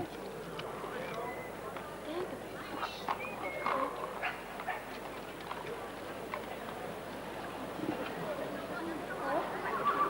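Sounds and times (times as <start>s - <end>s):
indistinct crowd chatter: 0.0s - 10.0s.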